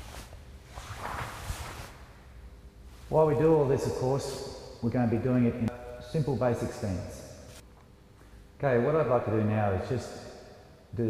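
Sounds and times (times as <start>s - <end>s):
cloth rustling and swishing: 0.0s - 3.4s.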